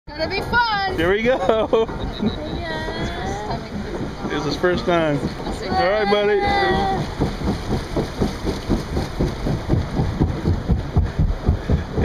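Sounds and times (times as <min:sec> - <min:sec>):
churning rushing water: 0:00.1 - 0:12.0
low rumbling thumps: 0:00.1 - 0:12.0.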